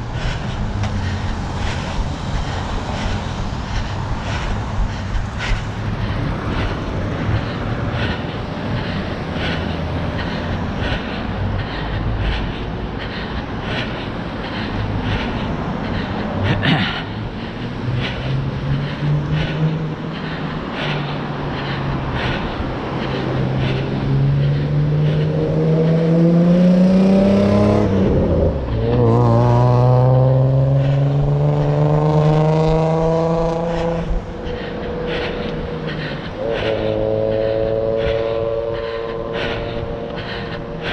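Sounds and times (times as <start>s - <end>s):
running footsteps on pavement: 0.0s - 40.9s
vehicle engine revving: 16.8s - 40.9s.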